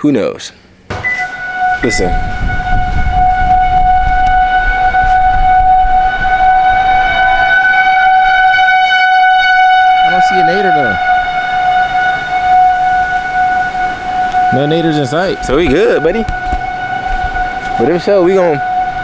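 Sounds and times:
warning siren steady tone: 0.9s - 19.0s
wind rumble on microphone: 1.0s - 17.9s.

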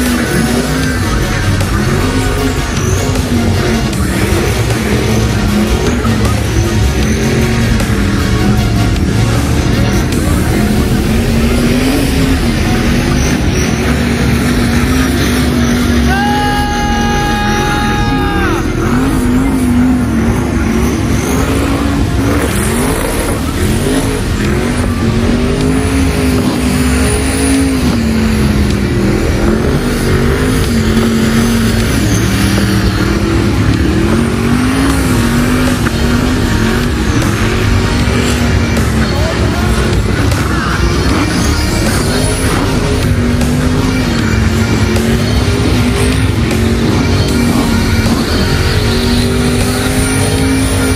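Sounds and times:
car engine revving high: 0.0s - 50.9s
tires spinning: 0.0s - 50.9s.

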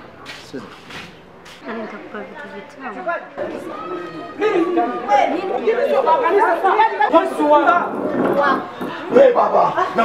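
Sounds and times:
people talking over one another: 0.2s - 10.0s.

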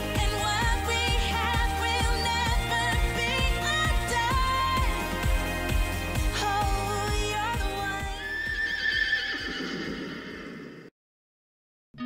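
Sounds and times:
intro music with a beat: 0.0s - 8.2s
horse whinny: 8.2s - 10.9s.

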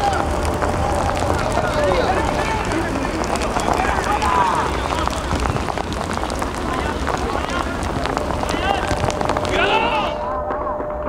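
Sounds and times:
people shouting: 0.0s - 10.4s
outdoor rumble: 0.0s - 11.0s.

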